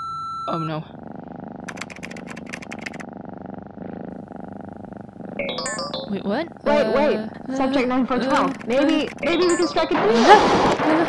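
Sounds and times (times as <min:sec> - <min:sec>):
computer keystrokes: 0:01.7 - 0:03.0, 0:08.3 - 0:09.6
rising electronic tones: 0:05.4 - 0:07.2, 0:09.2 - 0:11.0.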